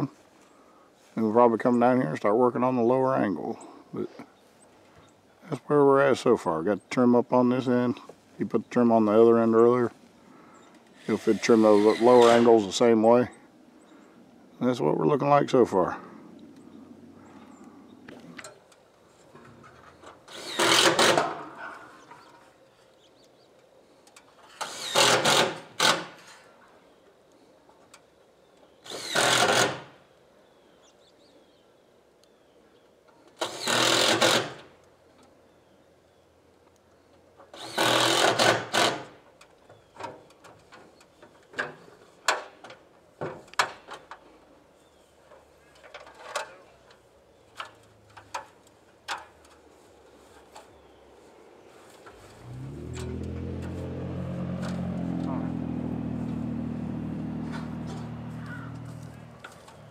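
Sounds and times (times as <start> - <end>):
engine running: 51.2 - 59.9.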